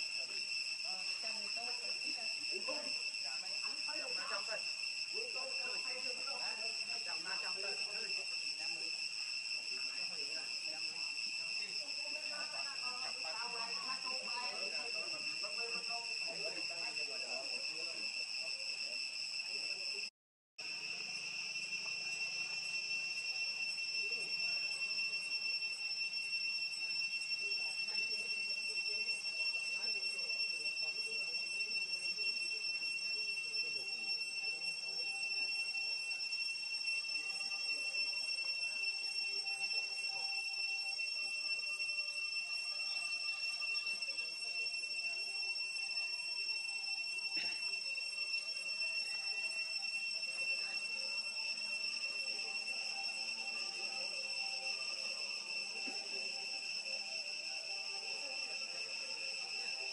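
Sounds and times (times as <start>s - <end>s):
high-pitched insect drone: 0.0s - 59.9s.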